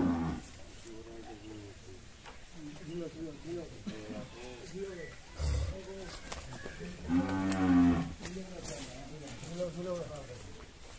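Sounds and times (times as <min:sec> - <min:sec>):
cow mooing: 0:07.1 - 0:08.1.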